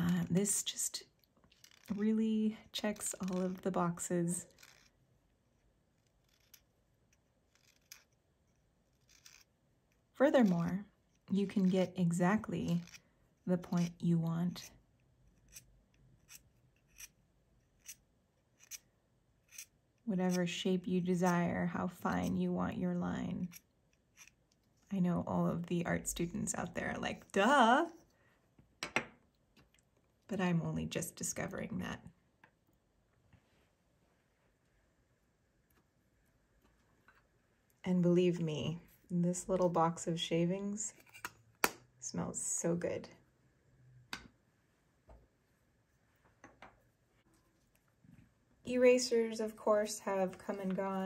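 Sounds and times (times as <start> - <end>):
knife shaving wood: 0.0 - 14.7, 15.3 - 21.5, 23.4 - 24.4
pencil set down on wooden table: 28.8 - 29.2.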